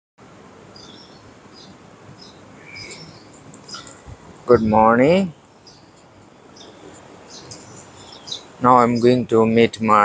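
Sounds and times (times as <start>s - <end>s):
background hiss: 0.2s - 10.0s
small birds chirping: 0.6s - 10.0s.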